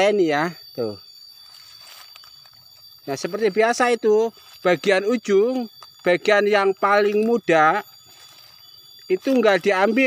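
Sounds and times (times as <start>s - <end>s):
steady high-pitched tone: 0.0s - 10.0s
faint rustles: 1.3s - 3.0s.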